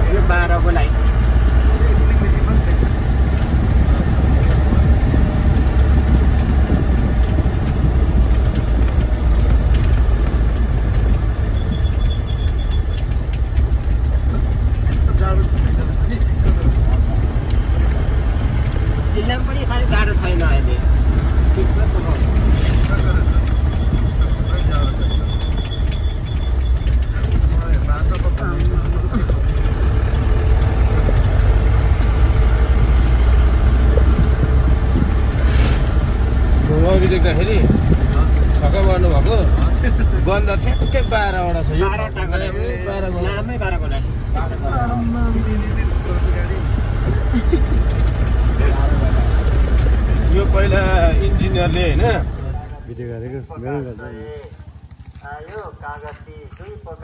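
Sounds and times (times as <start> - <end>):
vehicle engine and road noise: 0.0 - 57.0.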